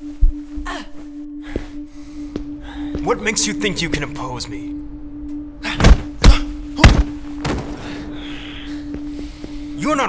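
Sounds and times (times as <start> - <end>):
droning music tone: 0.0 - 10.0.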